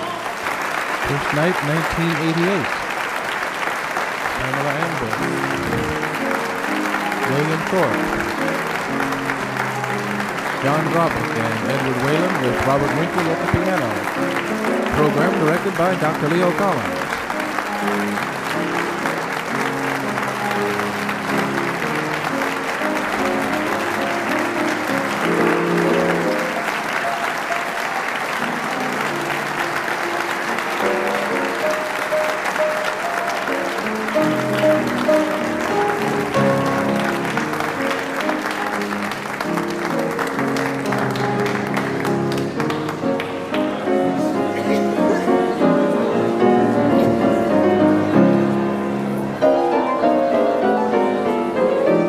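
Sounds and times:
audience applauding: 0:00.0 - 0:52.0
piano music: 0:00.0 - 0:52.0.

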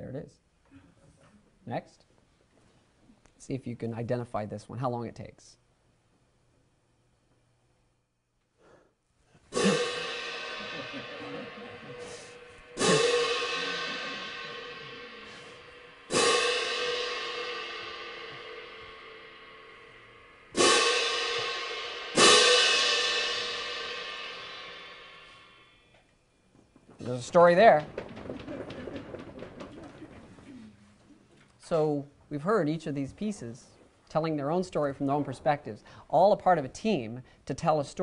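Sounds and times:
crash cymbals ringing: 0:09.5 - 0:25.9.

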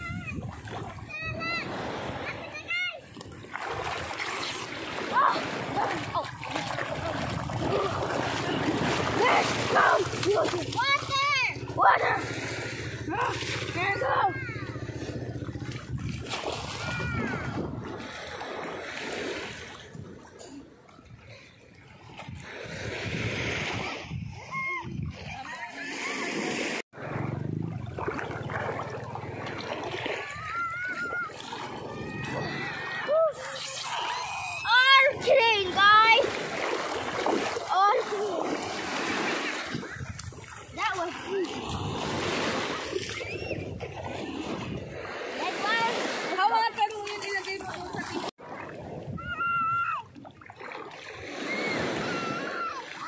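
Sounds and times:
water splashing in shallows: 0:00.0 - 0:53.0
children calling out: 0:05.0 - 0:12.4, 0:16.7 - 0:17.6, 0:30.1 - 0:36.3, 0:49.2 - 0:50.1, 0:51.3 - 0:53.0.

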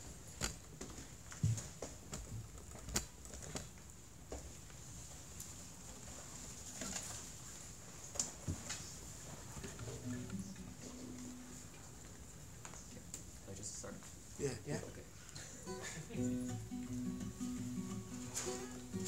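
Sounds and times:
soft acoustic guitar notes: 0:09.7 - 0:12.3, 0:15.4 - 0:19.0.

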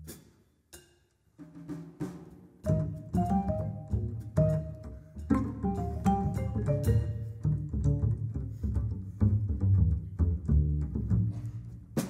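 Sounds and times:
soft percussion strokes: 0:02.6 - 0:07.5
low double bass notes: 0:02.7 - 0:12.0
vibraphone note: 0:05.6 - 0:07.3.

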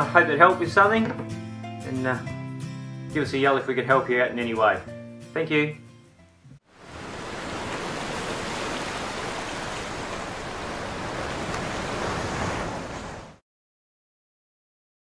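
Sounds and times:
rushing water: 0:06.7 - 0:13.4.

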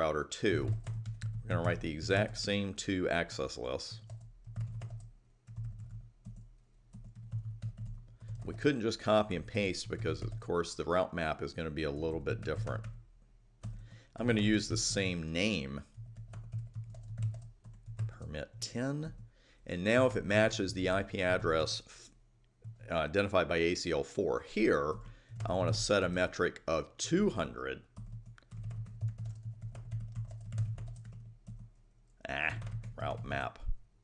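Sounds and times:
keyboard typing: 0:00.6 - 0:02.6, 0:04.0 - 0:10.5, 0:13.6 - 0:14.0, 0:15.8 - 0:18.4, 0:27.9 - 0:31.8, 0:32.4 - 0:33.5.

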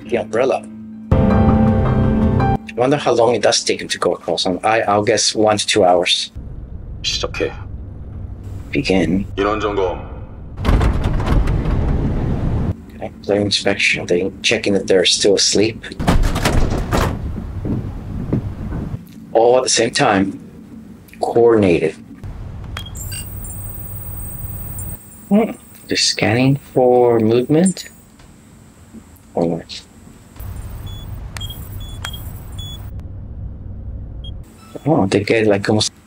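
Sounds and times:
low steady rumble: 0:06.3 - 0:15.8, 0:17.1 - 0:25.0, 0:30.4 - 0:34.5
short high electronic beeps: 0:22.8 - 0:25.0, 0:30.4 - 0:32.9.

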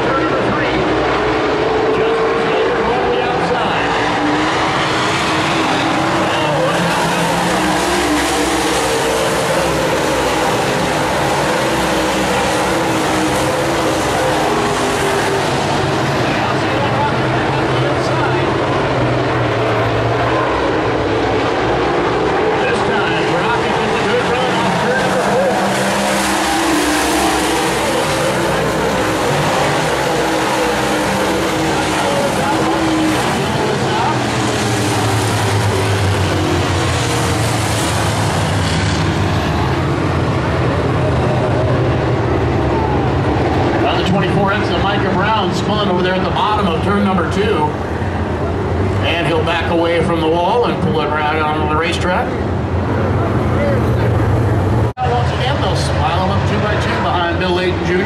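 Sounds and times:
race car engines roaring: 0:00.0 - 0:58.0.

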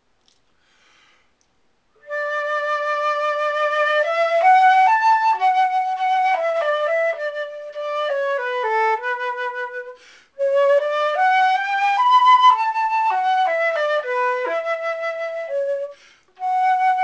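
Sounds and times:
solo flute playing: 0:02.0 - 0:17.0.

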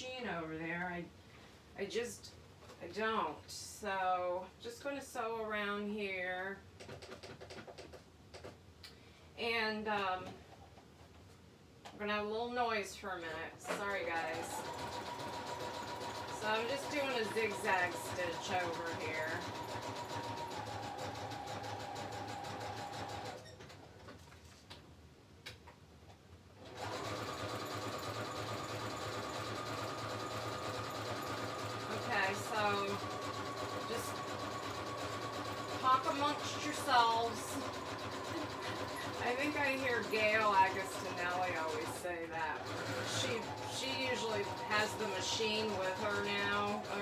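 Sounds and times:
sewing machine motor hum: 0:13.7 - 0:23.9, 0:26.6 - 0:47.0.

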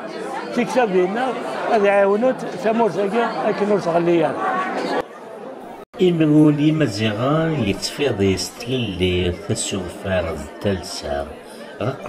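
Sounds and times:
crowd voices hubbub: 0:00.0 - 0:12.0.

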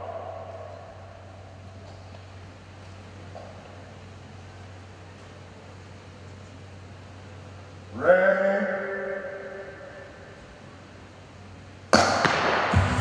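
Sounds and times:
low hall hum: 0:00.0 - 0:13.0
music: 0:12.7 - 0:13.0.

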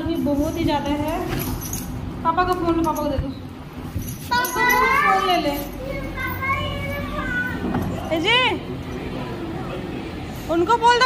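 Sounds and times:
child talking: 0:04.3 - 0:07.9.

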